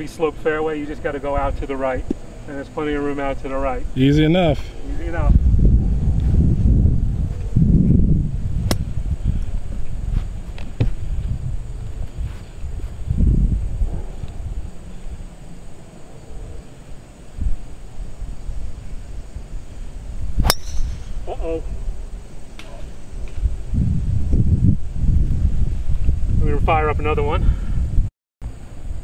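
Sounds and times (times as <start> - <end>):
wind buffeting microphone: 3.2 - 28.1
golf driver striking ball: 20.4 - 21.2.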